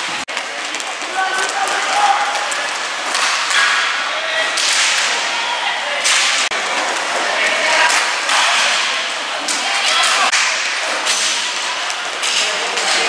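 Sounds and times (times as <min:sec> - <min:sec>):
skates and sticks scraping: 0:00.0 - 0:13.0.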